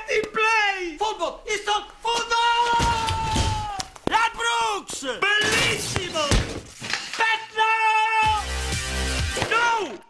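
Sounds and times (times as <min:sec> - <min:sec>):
man shouting excitedly: 0:00.0 - 0:06.4, 0:07.2 - 0:08.6, 0:09.4 - 0:10.0
thud: 0:02.7 - 0:04.2, 0:05.4 - 0:07.1.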